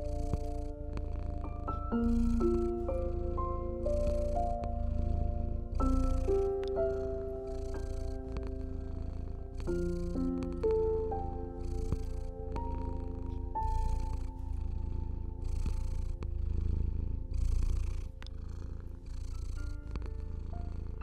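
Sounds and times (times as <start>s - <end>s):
cat purring: 0.0s - 21.0s
soft piano notes: 0.0s - 21.0s.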